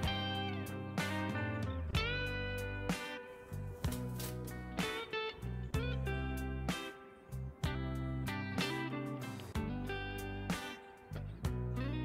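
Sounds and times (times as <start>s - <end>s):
guitar music: 0.0s - 12.0s.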